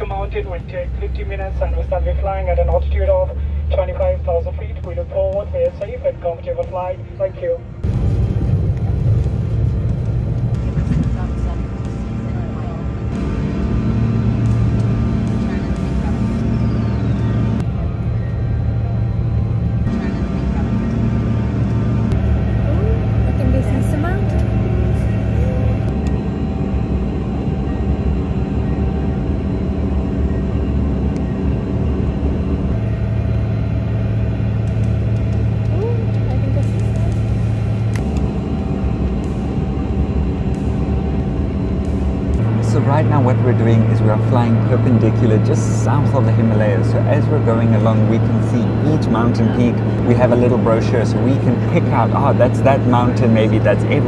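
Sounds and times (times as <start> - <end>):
airliner engines droning in cabin: 0.0 - 54.0.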